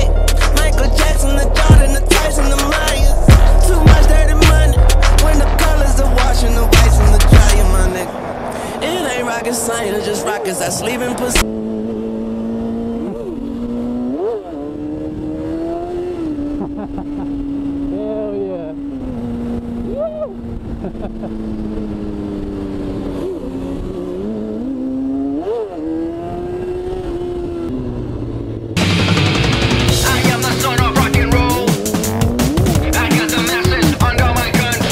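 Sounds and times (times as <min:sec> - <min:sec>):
motorcycle engine revving: 0:00.0 - 0:34.9.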